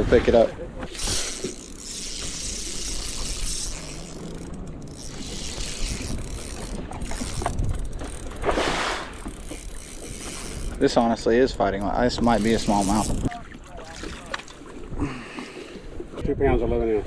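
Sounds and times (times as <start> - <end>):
wind on microphone: 0.0 - 10.9, 12.0 - 13.6
fishing reel being cranked: 0.9 - 13.3.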